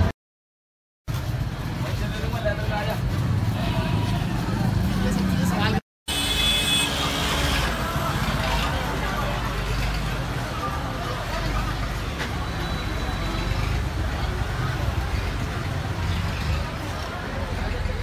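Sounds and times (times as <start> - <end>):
motor traffic: 1.1 - 18.0
people talking: 7.7 - 18.0.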